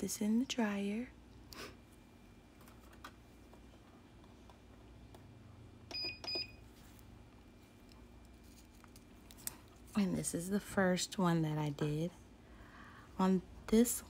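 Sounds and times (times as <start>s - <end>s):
faint room hum: 0.0s - 14.0s.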